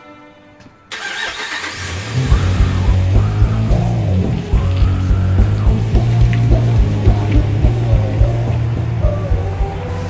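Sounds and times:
heavy rock music: 0.9s - 10.0s
truck engine starting and running: 0.9s - 10.0s.

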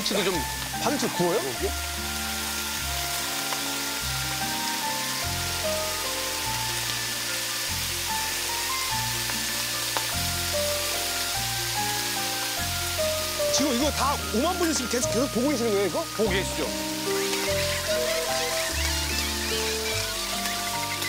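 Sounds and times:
background music: 0.0s - 21.0s
meat sizzling on a griddle: 0.0s - 21.0s.

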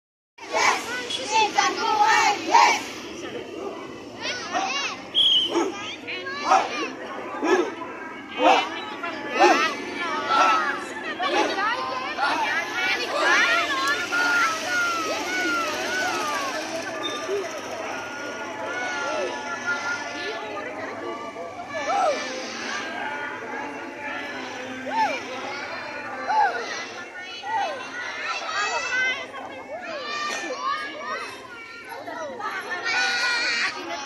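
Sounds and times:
children's voices: 0.4s - 34.0s
crowd chatter: 0.4s - 34.0s
motorbikes passing: 0.5s - 20.6s.

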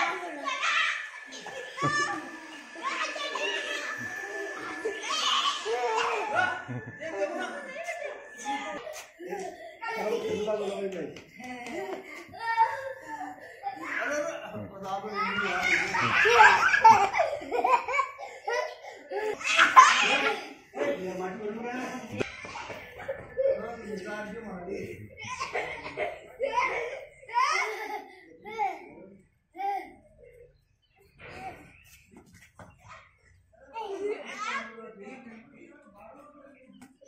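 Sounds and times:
children shouting and calling out: 0.0s - 10.9s, 11.6s - 20.9s, 25.2s - 29.0s.

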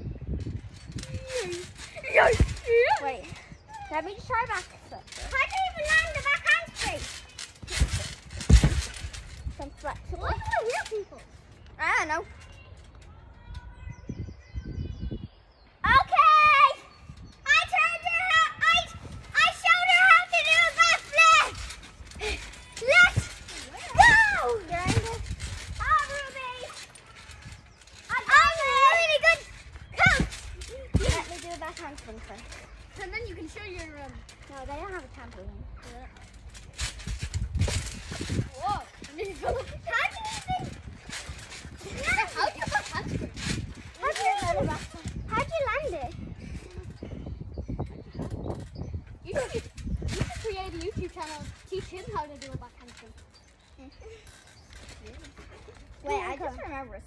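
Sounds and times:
children calling and squealing: 0.1s - 57.0s
young voices talking: 0.2s - 57.0s
heavy thumps on trampoline mat: 7.6s - 9.1s.

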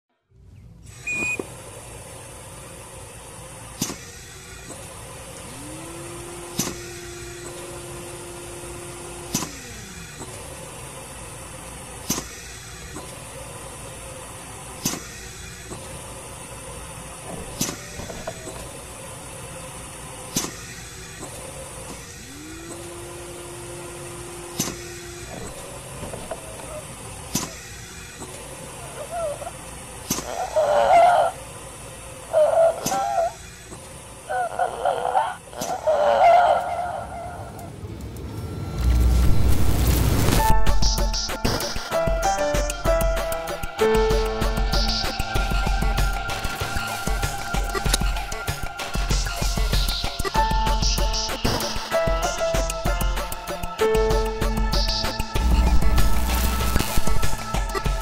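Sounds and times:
steady hum: 0.4s - 34.4s, 37.6s - 58.0s
low gliding tone: 54.3s - 58.0s.

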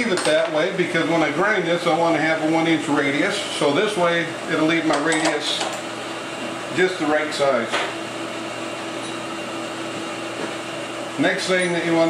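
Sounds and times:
steady mechanical hum: 0.0s - 12.0s.

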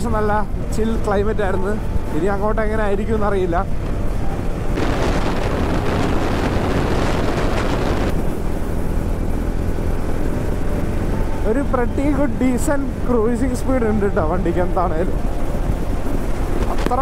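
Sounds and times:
wind on microphone: 3.8s - 8.2s.

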